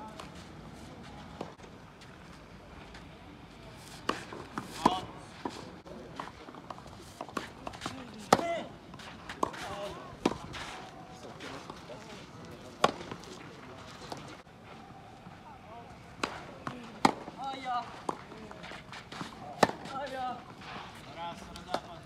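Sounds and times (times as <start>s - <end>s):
tennis ball struck by rackets: 4.0s - 10.8s, 12.8s - 13.2s, 16.2s - 20.0s.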